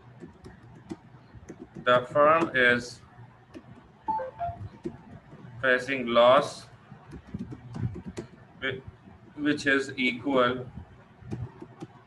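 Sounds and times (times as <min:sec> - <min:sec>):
computer keyboard keys clicking: 0:00.2 - 0:01.9, 0:07.1 - 0:08.4
brief beeps: 0:04.1 - 0:04.6.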